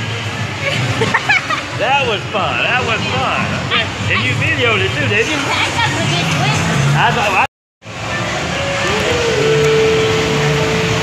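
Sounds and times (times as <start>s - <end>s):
mechanical noise with low hum: 0.0s - 11.0s
steady mid-pitched tone: 8.0s - 11.0s.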